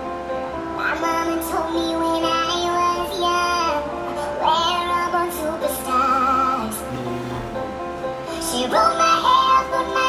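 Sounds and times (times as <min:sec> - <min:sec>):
instrumental backing: 0:00.0 - 0:10.0
high voice singing: 0:04.8 - 0:07.8.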